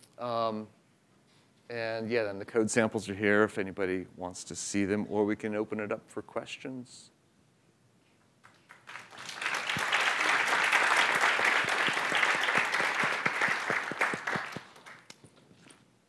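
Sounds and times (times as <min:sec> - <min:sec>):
audience applauding: 0:08.4 - 0:15.2.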